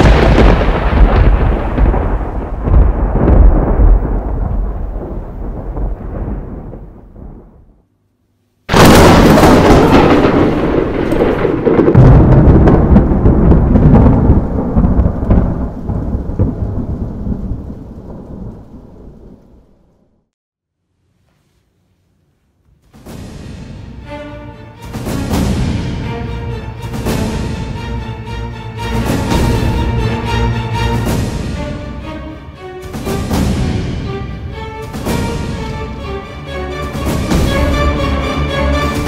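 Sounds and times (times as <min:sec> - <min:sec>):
loud deep crashes: 0:00.0 - 0:07.8, 0:08.7 - 0:16.9, 0:22.9 - 0:28.3, 0:28.9 - 0:36.0.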